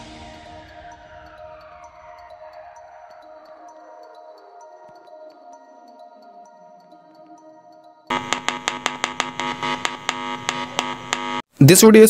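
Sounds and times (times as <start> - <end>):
sharp regular clicks: 8.1 - 11.5
speaker buzzing: 8.1 - 11.5.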